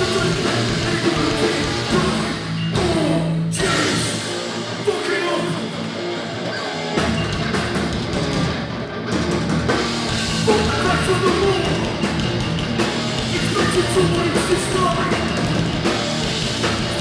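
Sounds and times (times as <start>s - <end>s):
punk band playing live: 0.0s - 17.0s.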